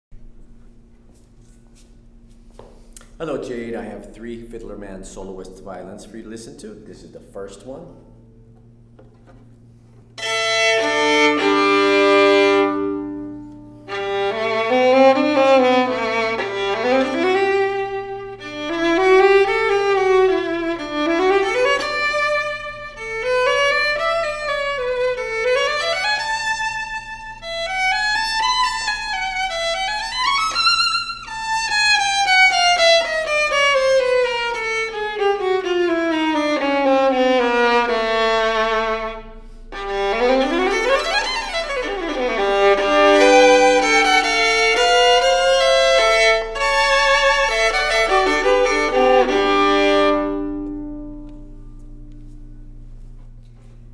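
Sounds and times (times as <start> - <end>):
solo violin bowed runs: 8.5 - 53.9.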